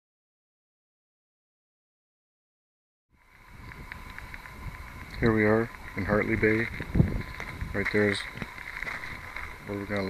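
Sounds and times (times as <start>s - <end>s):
wind rushing: 3.2s - 9.9s
low rumble: 3.2s - 10.0s.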